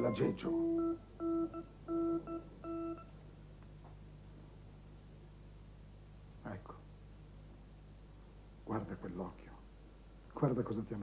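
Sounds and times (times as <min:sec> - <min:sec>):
electronic keyboard note: 0:00.0 - 0:03.1.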